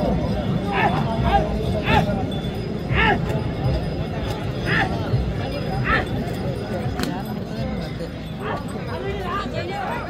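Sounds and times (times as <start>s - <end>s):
men shouting and calling: 0.5s - 3.4s, 4.6s - 6.3s.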